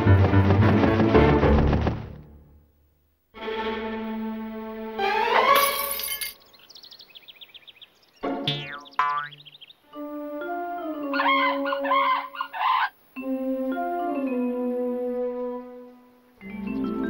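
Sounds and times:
bird-like chirps: 6.3s - 9.9s.

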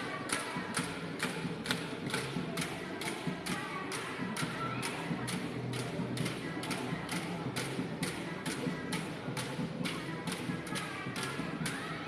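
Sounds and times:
gongs struck in steady beat: 0.2s - 11.9s.

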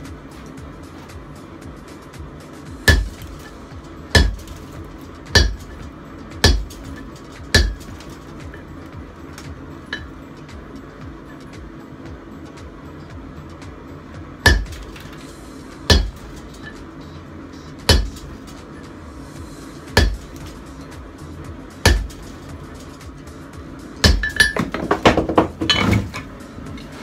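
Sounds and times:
hammer striking steel on anvil: 2.8s - 8.7s, 9.9s - 10.2s, 14.4s - 15.2s, 15.8s - 16.9s, 17.8s - 18.9s, 19.8s - 20.7s, 21.8s - 23.0s, 24.0s - 26.2s.

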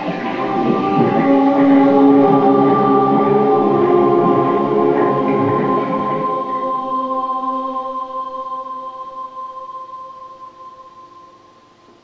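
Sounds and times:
held tone with octave below: 0.0s - 12.0s.

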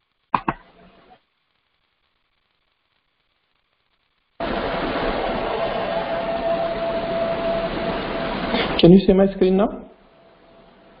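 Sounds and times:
line noise hiss: 0.0s - 11.0s.

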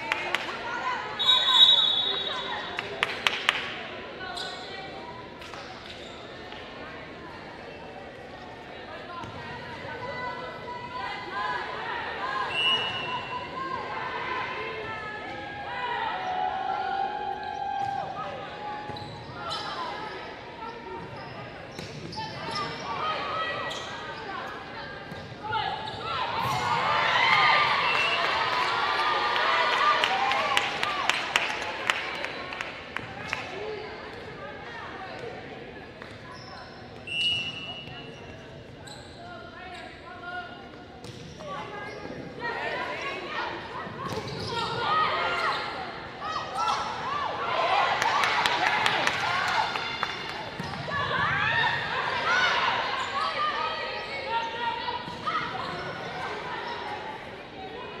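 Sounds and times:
shouting and cheering: 25.5s - 32.3s, 44.6s - 56.8s.

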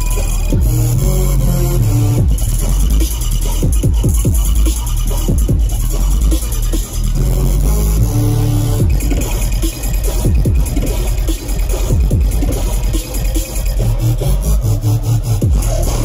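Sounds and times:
loud electronic bass music: 0.0s - 16.0s.

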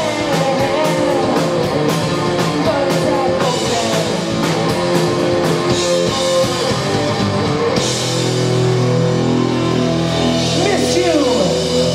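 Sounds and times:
heavy metal band playing live: 0.0s - 11.9s.

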